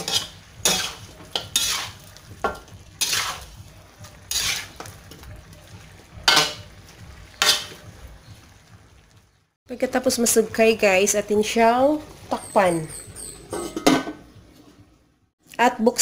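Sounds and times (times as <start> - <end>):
spatula scraping a wok: 0.0 - 5.3, 6.0 - 8.0.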